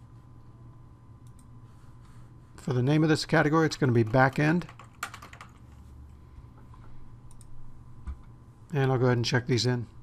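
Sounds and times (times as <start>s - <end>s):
low steady hum: 0.0s - 10.0s
keyboard typing: 3.9s - 5.8s.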